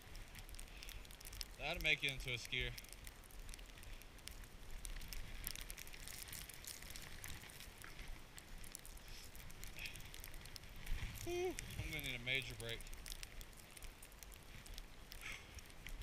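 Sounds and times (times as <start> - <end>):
small crackles and ticks: 0.0 - 16.0.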